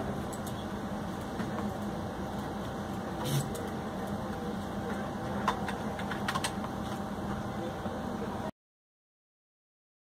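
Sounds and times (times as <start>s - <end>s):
steady background noise: 0.0s - 8.5s.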